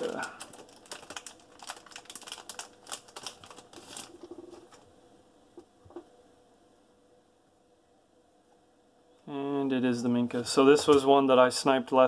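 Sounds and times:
plastic packaging crinkling: 0:00.0 - 0:04.9.

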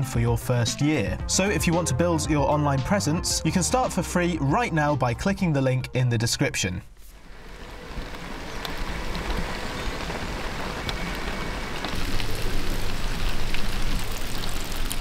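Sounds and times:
heavy rain falling: 0:07.1 - 0:15.0.

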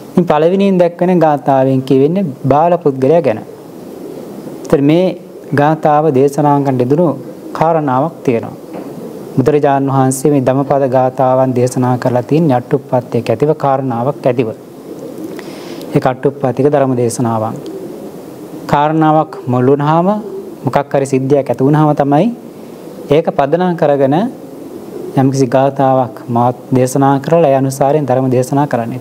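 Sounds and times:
man speaking in a sermon: 0:00.2 - 0:03.5, 0:04.7 - 0:08.6, 0:09.4 - 0:14.6, 0:15.9 - 0:17.6, 0:18.7 - 0:22.4, 0:23.1 - 0:24.4, 0:25.2 - 0:29.0.

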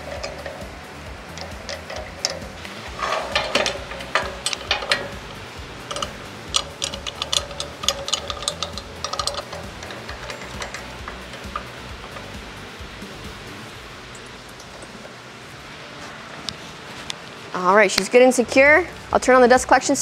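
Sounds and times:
clamps clicking: 0:00.0 - 0:13.5
background music: 0:00.0 - 0:16.4.

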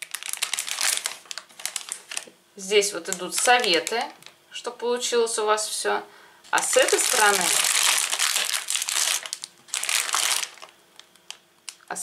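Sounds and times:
plastic packet crinkling: 0:00.0 - 0:04.4, 0:06.6 - 0:11.9.

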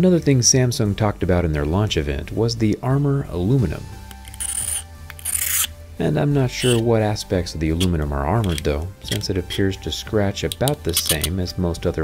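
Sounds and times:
metal blade scraping metal frame: 0:04.1 - 0:05.8, 0:06.5 - 0:06.9, 0:07.7 - 0:09.4, 0:10.5 - 0:11.3.

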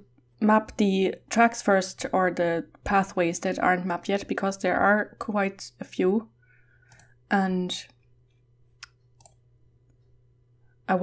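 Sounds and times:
woman speaking: 0:00.0 - 0:06.3, 0:07.3 - 0:07.9
computer mouse clicks: 0:06.9 - 0:07.2, 0:08.3 - 0:10.1.

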